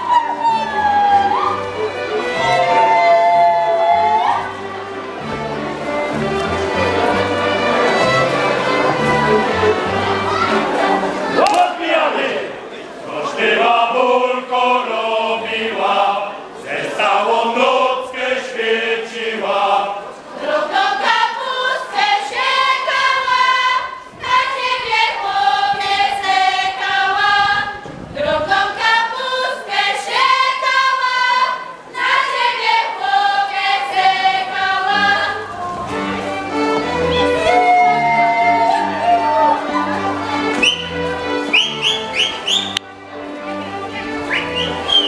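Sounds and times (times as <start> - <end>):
group singing unaccompanied: 0.0 - 42.7.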